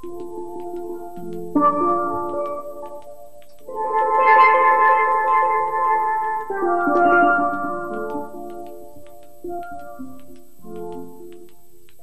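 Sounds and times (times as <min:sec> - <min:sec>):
steelpan rolled chords: 0:03.7 - 0:08.4.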